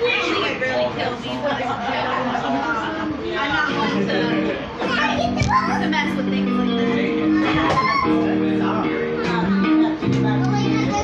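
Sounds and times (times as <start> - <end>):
indistinct voices: 0.0 - 11.0
karaoke backing track: 0.0 - 11.0.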